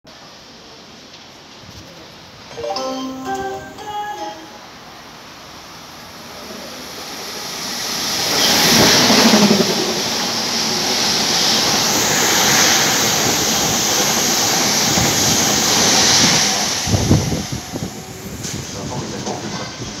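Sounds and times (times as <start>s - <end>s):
train passing at speed: 0.1s - 20.0s.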